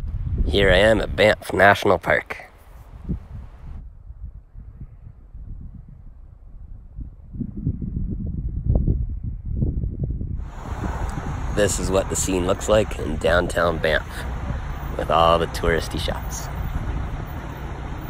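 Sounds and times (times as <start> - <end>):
outdoor street ambience: 0.0 - 4.6, 10.4 - 18.0
wind buffeting microphone: 0.0 - 18.0.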